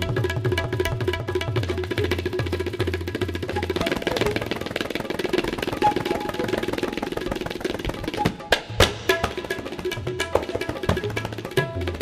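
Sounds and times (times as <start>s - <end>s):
music: 0.0s - 12.0s
tabla playing fast strokes: 0.0s - 12.0s.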